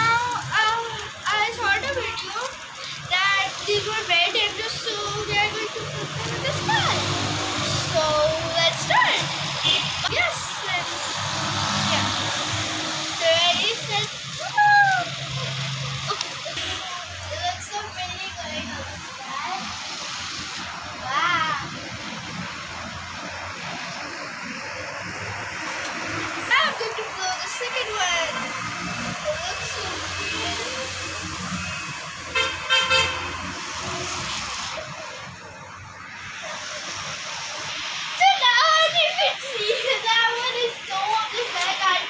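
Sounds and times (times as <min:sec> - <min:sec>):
passing traffic hiss: 0:00.0 - 0:42.0
car horn toot: 0:32.3 - 0:33.4.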